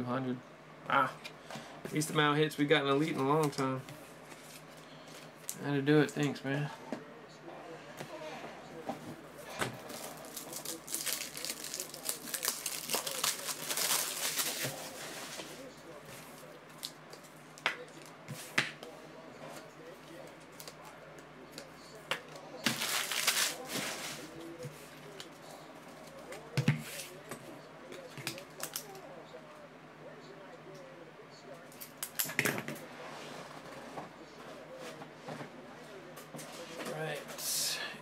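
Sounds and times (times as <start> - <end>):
foil wrappers crinkling: 9.8 - 15.7, 22.6 - 24.4.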